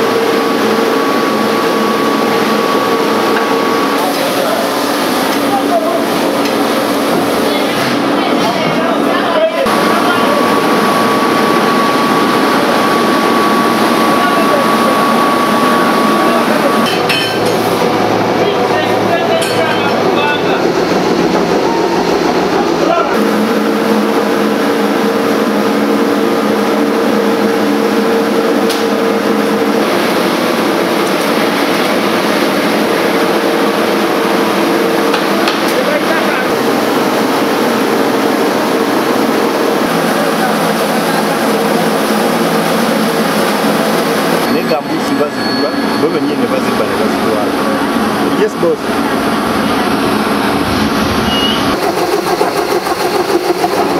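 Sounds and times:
plant machinery running: 0.0 - 53.9
steady hum: 0.0 - 53.9.

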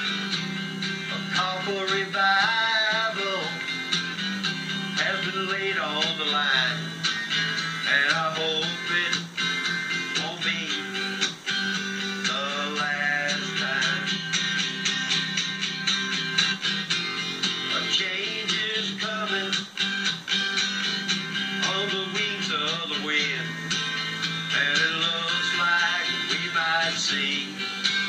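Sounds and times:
acoustic guitar strumming: 0.0 - 28.0.

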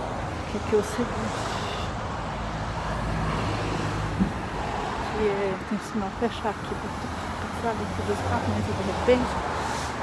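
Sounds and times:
car engines: 0.0 - 10.0.

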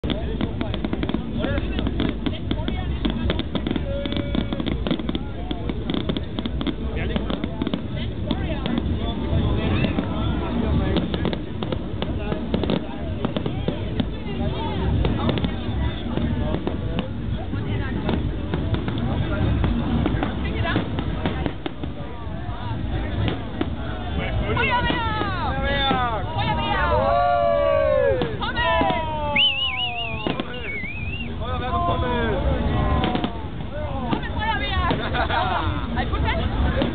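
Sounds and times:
fireworks bursting and crackling: 0.0 - 36.9
people's voices: 0.0 - 36.9.

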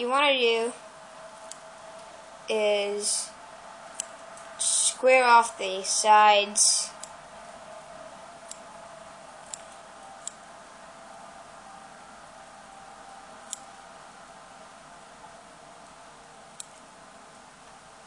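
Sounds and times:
steady faint hiss: 0.0 - 18.0
small scissors snipping: 9.5 - 10.4.

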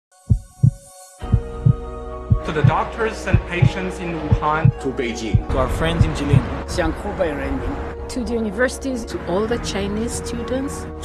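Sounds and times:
heartbeat double thumps: 0.3 - 6.6
held music chord: 1.2 - 11.0.

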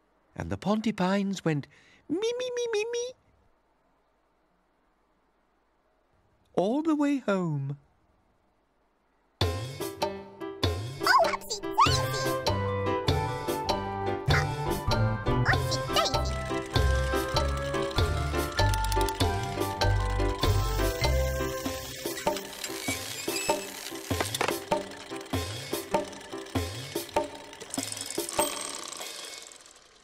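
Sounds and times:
gentle children's tune: 9.4 - 29.9.

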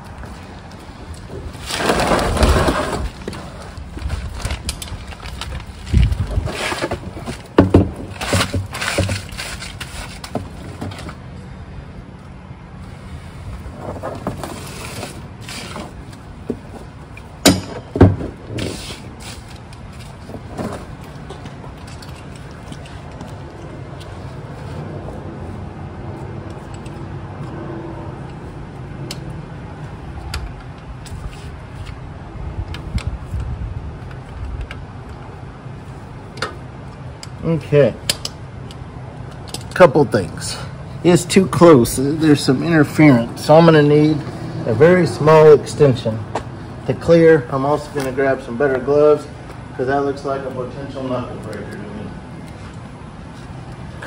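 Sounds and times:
hand tools scraping and clicking: 18.6 - 24.8, 26.4 - 27.6.

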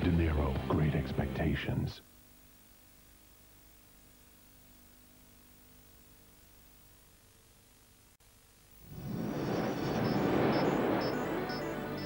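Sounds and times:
music: 0.0 - 1.9, 10.5 - 12.0
high twinkling chimes: 9.2 - 12.0.

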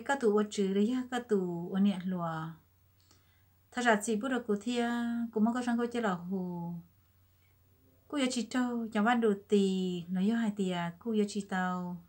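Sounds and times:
woman speaking: 0.0 - 2.7, 3.7 - 6.9, 8.1 - 12.0.

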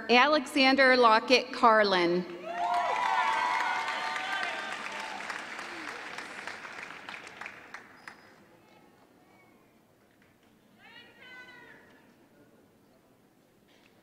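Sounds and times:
high-pitched whoop from audience: 2.4 - 6.2
audience applause: 2.4 - 8.4.

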